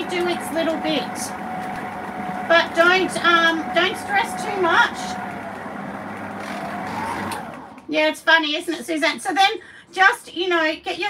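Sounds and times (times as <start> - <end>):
electric stand mixer running: 0.0 - 7.9.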